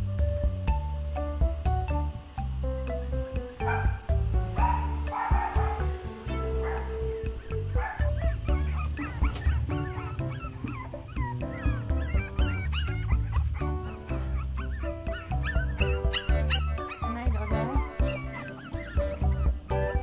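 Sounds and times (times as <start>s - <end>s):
background music with beat: 0.0s - 20.0s
puppies whimpering and yipping: 3.6s - 20.0s.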